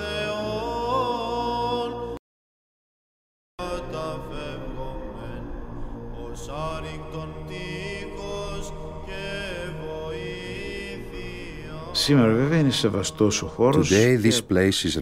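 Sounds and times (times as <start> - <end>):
voices singing slow chant: 0.0 - 2.2, 3.6 - 14.5.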